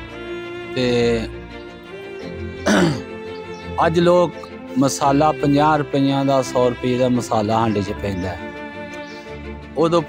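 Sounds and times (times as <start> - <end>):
background music: 0.0 - 10.0
speech: 0.8 - 1.3, 3.8 - 8.4, 9.8 - 10.0
man clearing his throat: 2.7 - 3.1.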